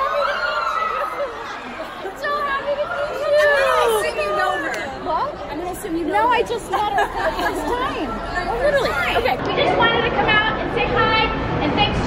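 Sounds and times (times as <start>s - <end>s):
crowd murmur in large hall: 0.0s - 12.0s
women talking and exclaiming: 0.0s - 12.0s.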